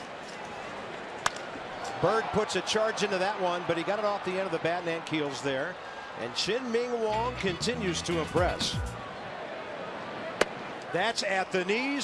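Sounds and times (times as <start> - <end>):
crowd noise: 0.0 - 12.0
wooden bat hitting ball: 1.2 - 1.5.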